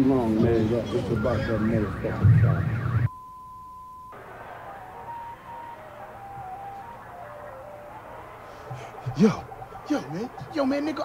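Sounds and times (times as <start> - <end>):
steady high beep: 3.1 - 4.2.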